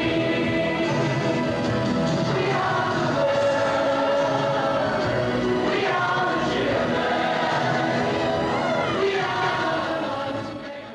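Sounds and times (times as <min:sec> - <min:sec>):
performers singing in chorus: 0:00.0 - 0:10.9.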